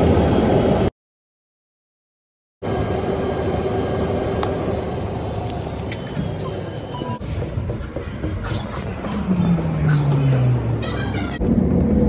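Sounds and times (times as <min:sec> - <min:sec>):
aircraft machinery rumble: 0:02.6 - 0:12.0.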